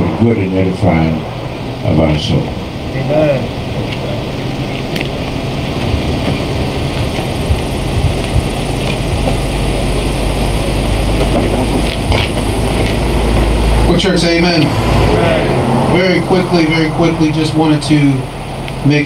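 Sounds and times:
low engine rumble: 0:00.0 - 0:19.0.

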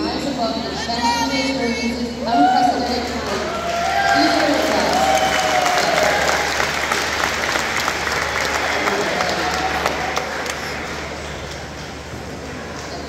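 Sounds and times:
audience applauding: 0:02.8 - 0:11.7.

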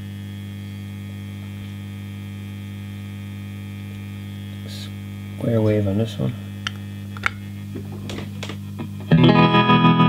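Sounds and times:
amplifier mains hum: 0:00.0 - 0:10.0.

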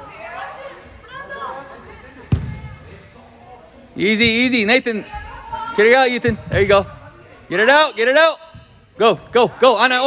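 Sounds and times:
soccer ball kick: 0:02.3 - 0:02.8.

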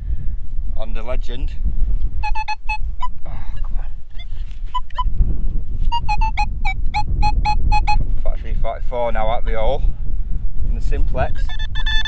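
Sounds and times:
low wind rumble: 0:00.0 - 0:12.0
metal detector beeps: 0:02.2 - 0:02.8, 0:05.9 - 0:08.0, 0:11.3 - 0:12.0.

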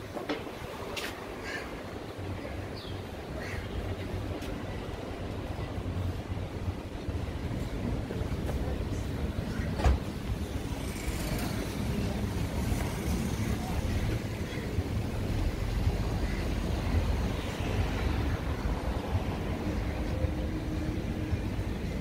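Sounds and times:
road traffic rumble: 0:00.0 - 0:22.0.

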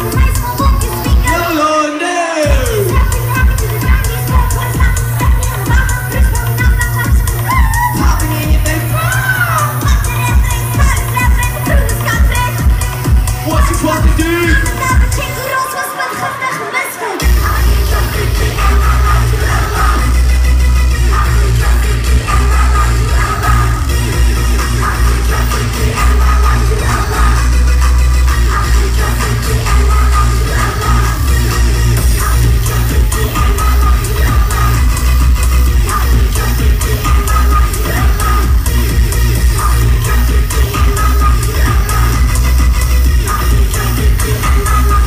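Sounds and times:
loud electronic rave music: 0:00.0 - 0:45.0.

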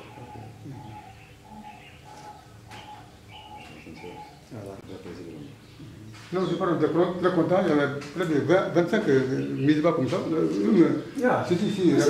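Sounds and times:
bird chirping: 0:00.0 - 0:12.0
doves cooing: 0:00.0 - 0:12.0.

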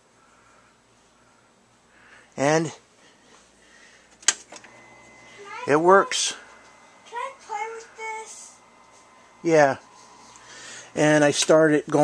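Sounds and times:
faint high appliance whine: 0:00.0 - 0:12.0.

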